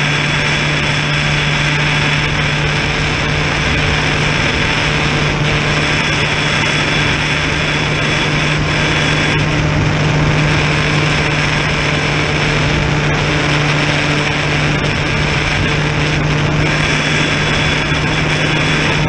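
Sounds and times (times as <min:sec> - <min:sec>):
model plane motor humming: 0:00.0 - 0:19.0
wind noise on microphone: 0:00.0 - 0:19.0.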